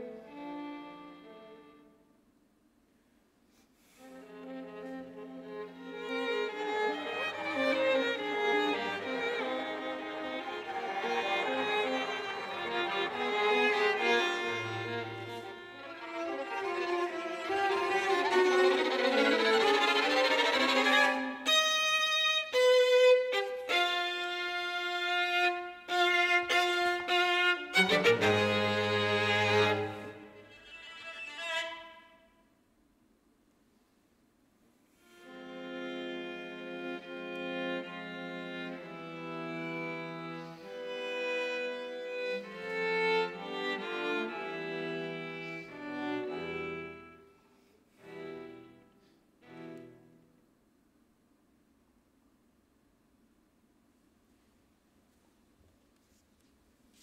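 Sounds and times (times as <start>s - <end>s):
string quartet playing: 0.0s - 1.8s, 4.0s - 32.0s, 35.1s - 47.3s, 47.9s - 50.3s.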